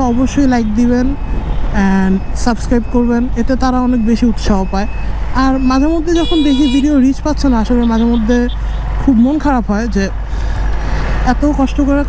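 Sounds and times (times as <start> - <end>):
motorcycle riding: 0.0 - 12.0.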